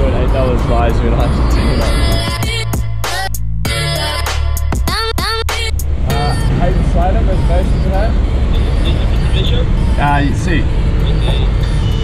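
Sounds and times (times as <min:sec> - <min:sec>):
hip-hop music: 0:00.0 - 0:12.0
road traffic rumble: 0:00.0 - 0:12.0.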